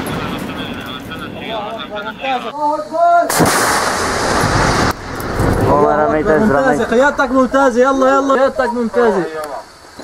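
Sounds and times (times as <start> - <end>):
men's voices: 0.0 - 3.5, 5.6 - 10.0
rocket launch roar: 3.3 - 8.1
low rumble: 3.4 - 8.6.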